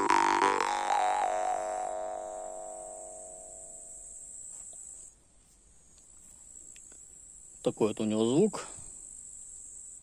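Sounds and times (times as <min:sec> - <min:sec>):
high insect trill: 0:00.0 - 0:10.0.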